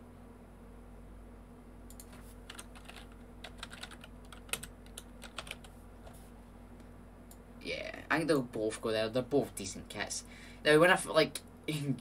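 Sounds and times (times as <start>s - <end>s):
faint steady hum: 0.0s - 12.0s
typing on computer keyboard: 1.9s - 5.7s.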